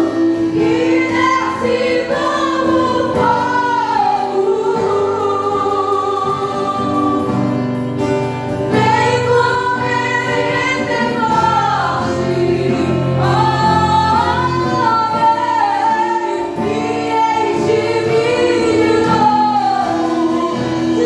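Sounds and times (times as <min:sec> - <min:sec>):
drum kit: 0:00.0 - 0:21.0
strummed acoustic guitar: 0:00.0 - 0:21.0
women singing: 0:00.0 - 0:21.0.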